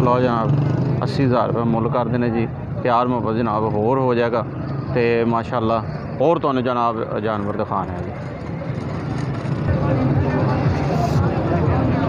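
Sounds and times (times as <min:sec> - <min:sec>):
voices chattering: 0:00.0 - 0:12.0
vehicle engine running: 0:07.4 - 0:12.0.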